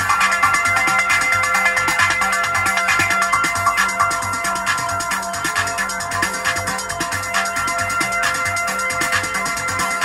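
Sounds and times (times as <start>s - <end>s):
drum machine pattern: 0.0s - 10.0s.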